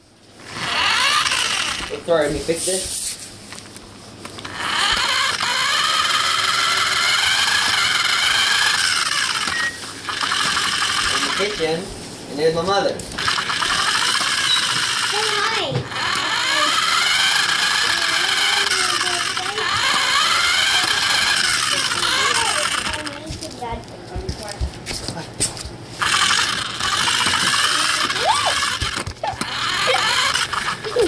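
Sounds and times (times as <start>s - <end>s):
toy car electric motor whining: 0.4s - 2.6s, 4.2s - 11.8s, 13.1s - 23.6s, 26.0s - 31.0s.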